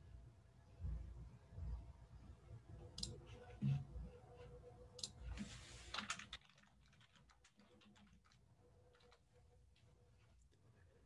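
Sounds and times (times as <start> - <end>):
computer keyboard and mouse clicks: 3.0 - 3.2, 5.0 - 5.2, 5.9 - 9.2.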